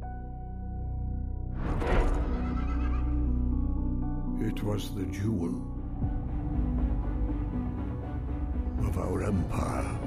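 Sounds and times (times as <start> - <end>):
low film score music: 0.0 - 10.0
horse whinnying: 2.2 - 3.3.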